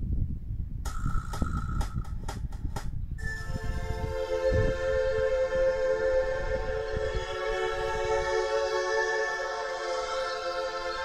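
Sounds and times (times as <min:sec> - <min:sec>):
wind rumble on microphone: 0:00.0 - 0:08.7.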